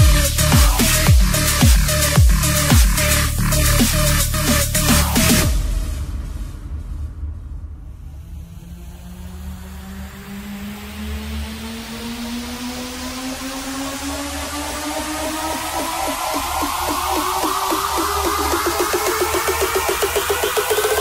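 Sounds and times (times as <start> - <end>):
fast rhythmic synth pattern: 0.0 - 5.8, 14.4 - 21.0
noise sweep: 0.0 - 21.0
pulsing sub-bass: 0.0 - 21.0
synth riser climbing in pitch: 0.0 - 21.0.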